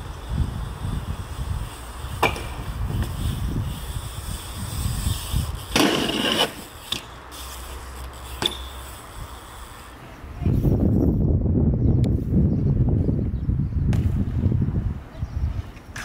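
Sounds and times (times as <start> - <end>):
bike grinding along ledge: 0.0 - 11.0
bike tyres rolling on concrete: 0.0 - 11.2
bike landing clacks: 1.8 - 3.6, 5.2 - 9.0
bike clacking on metal rail: 2.2 - 3.2, 8.4 - 8.8.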